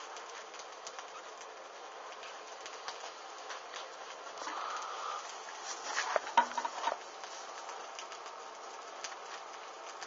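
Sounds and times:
burning paper crackling: 0.0 - 10.0
flame hissing: 0.0 - 10.0.

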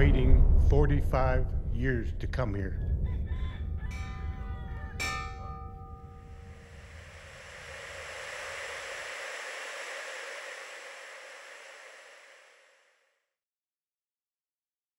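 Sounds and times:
low rumble: 2.6 - 13.0
struck metallic tones ringing: 3.9 - 12.7
steady hiss: 6.0 - 13.0.

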